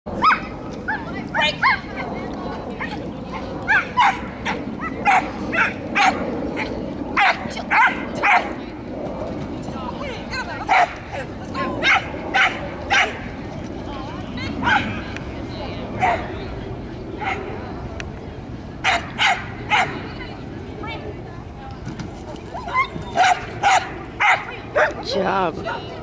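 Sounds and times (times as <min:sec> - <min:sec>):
dog barking: 0:18.8 - 0:20.0, 0:23.2 - 0:25.0.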